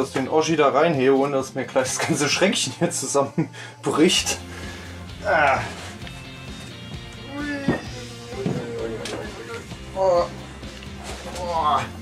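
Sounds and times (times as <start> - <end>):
background music: 0.0 - 12.0
man straining: 4.4 - 6.1, 7.1 - 12.0.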